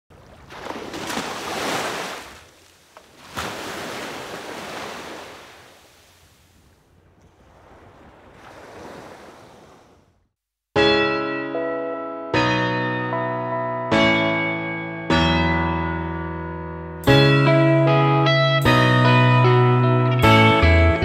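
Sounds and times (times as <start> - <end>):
sea waves washing on beach: 0.2 - 10.0
loud piano chord: 10.8 - 20.5.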